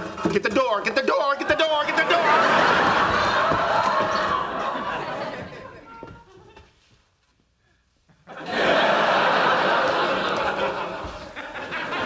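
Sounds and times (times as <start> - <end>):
studio audience laughing: 1.0 - 5.8, 8.3 - 12.0.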